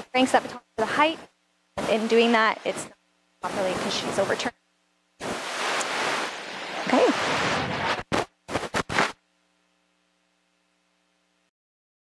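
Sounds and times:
faint steady hum: 0.0s - 11.5s
short scratchy noises: 5.2s - 9.2s.

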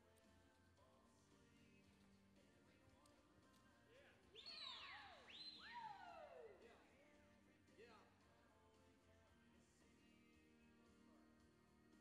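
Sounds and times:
high-pitched sliding whistles: 4.4s - 6.2s.

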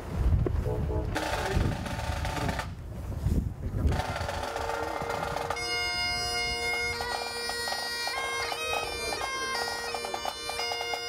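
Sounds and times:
wind rumbling on microphone: 0.0s - 7.3s
bagpipe playing: 4.0s - 11.0s.

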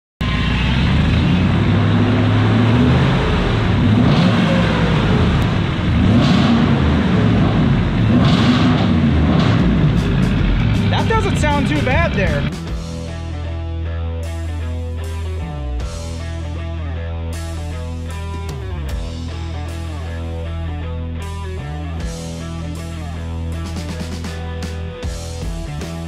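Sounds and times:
loud engine running with surges: 0.2s - 12.8s.

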